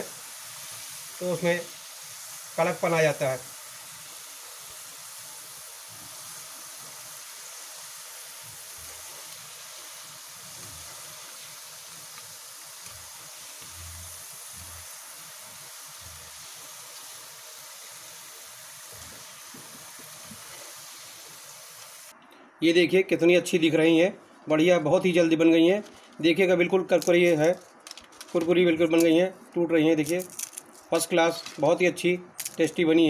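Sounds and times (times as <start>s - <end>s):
potato slices sizzling in oil: 0.0s - 22.2s, 26.3s - 29.2s, 29.8s - 33.0s.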